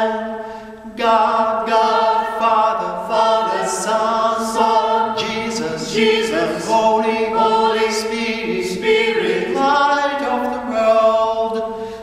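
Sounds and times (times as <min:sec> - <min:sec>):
a cappella group singing a hymn: 0:00.0 - 0:12.0.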